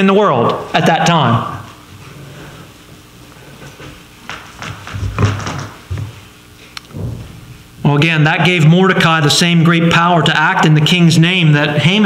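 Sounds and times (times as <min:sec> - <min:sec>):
low hum: 0:01.4 - 0:12.0
soft thump with rustle: 0:06.9 - 0:07.5.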